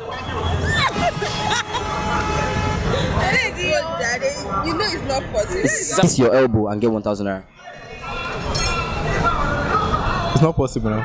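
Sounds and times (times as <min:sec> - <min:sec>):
people laughing: 0:00.0 - 0:03.5
vehicle horn long blast: 0:00.1 - 0:03.3.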